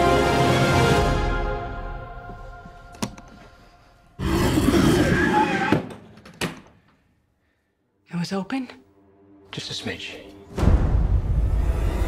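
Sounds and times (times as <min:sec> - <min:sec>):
squealing cry: 0:04.2 - 0:05.8.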